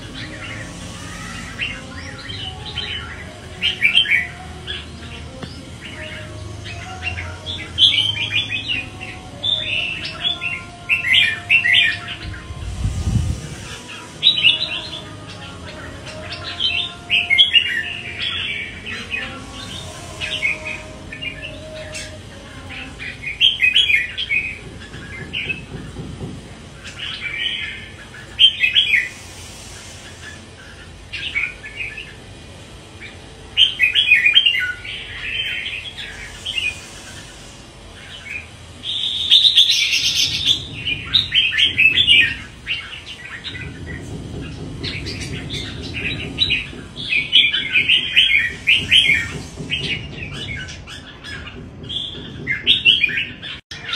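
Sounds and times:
bird chattering song: 0.0s - 53.9s.

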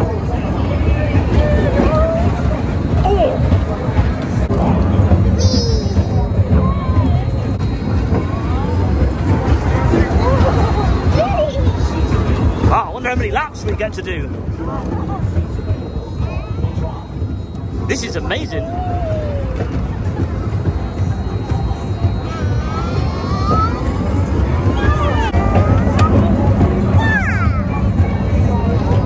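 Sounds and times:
faint voices: 0.0s - 29.0s
roller coaster low rumble: 0.0s - 29.0s
high-pitched squeals: 5.4s - 7.0s.

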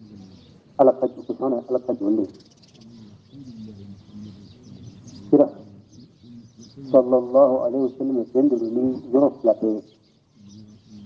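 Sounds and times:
faint bird calls: 0.0s - 11.0s
person speaking: 0.8s - 2.4s, 5.2s - 5.9s, 6.8s - 9.8s.

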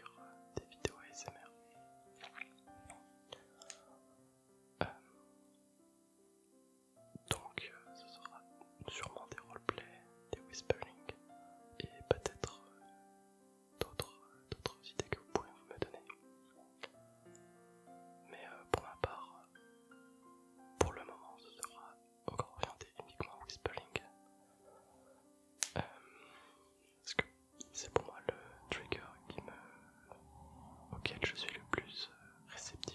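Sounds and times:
man whispering: 0.0s - 1.6s, 4.8s - 5.2s, 7.2s - 11.2s, 11.8s - 12.7s, 13.8s - 17.0s, 18.2s - 19.5s, 20.8s - 25.1s, 25.7s - 26.2s, 27.0s - 30.2s, 30.9s - 32.9s
soft background music: 0.0s - 32.9s.

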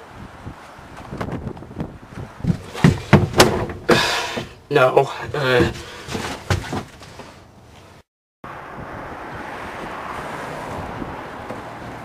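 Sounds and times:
wind on microphone: 0.0s - 2.7s, 8.7s - 11.8s
sharp knocks: 2.4s - 4.6s.

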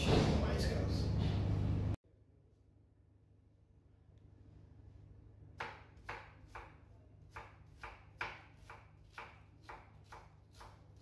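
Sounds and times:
knife chopping on wooden board: 5.6s - 11.0s.

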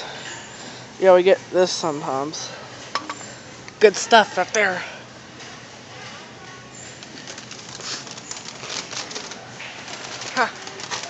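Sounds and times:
store room noise: 0.0s - 11.0s.

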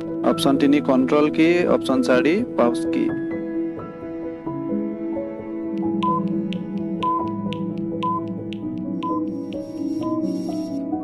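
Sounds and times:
sustained music notes: 2.3s - 11.0s
steady clicking beat: 5.6s - 10.7s.

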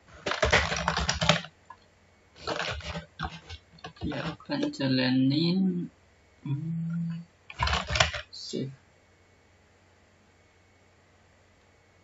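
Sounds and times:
computer keyboard typing: 0.1s - 1.8s, 2.4s - 4.8s, 7.5s - 8.3s.

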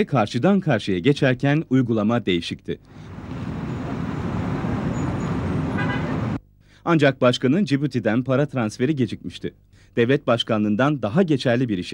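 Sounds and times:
cars passing: 2.9s - 6.4s
short car horn toot: 5.7s - 6.2s.

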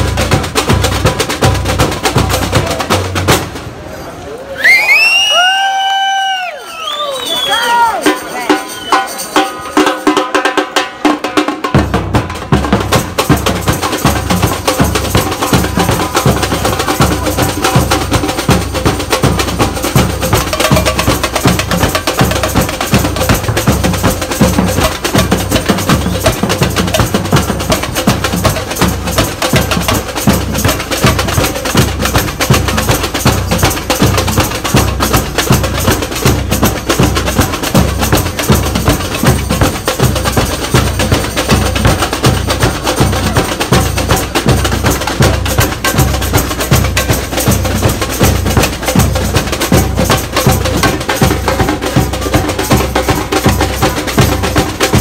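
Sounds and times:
snare drums beaten with sticks: 0.0s - 3.7s, 8.0s - 55.0s.

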